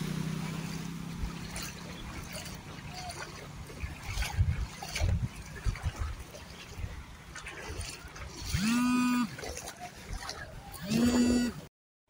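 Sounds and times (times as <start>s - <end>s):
drawn-out voice calls: 1.7s - 3.9s, 8.0s - 11.7s.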